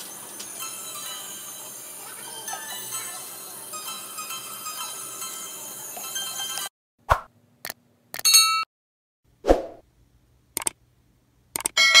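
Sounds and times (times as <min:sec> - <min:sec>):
sharp mouse clicks: 0:10.6 - 0:10.8, 0:11.5 - 0:11.8.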